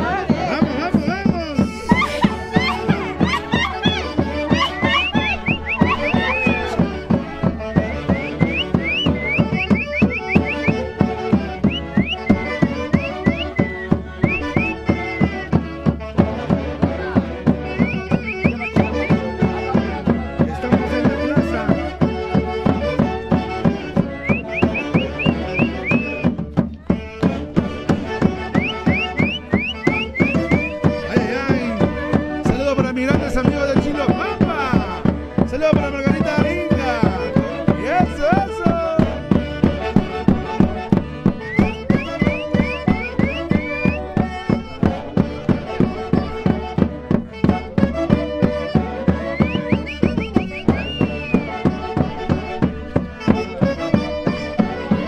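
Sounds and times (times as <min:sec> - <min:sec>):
fast steady drumbeat: 0:00.0 - 0:55.0
festival band melody with slides: 0:00.0 - 0:55.0.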